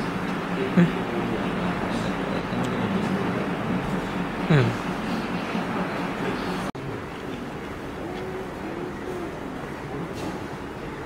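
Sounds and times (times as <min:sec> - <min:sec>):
faint indistinct voices: 0:00.0 - 0:11.0
steady outdoor noise: 0:00.0 - 0:11.0.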